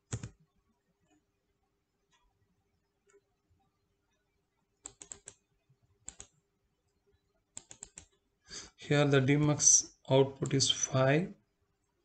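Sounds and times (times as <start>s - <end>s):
keyboard and mouse clicking: 0.0s - 0.4s, 4.8s - 5.4s, 6.0s - 6.4s, 7.5s - 8.2s.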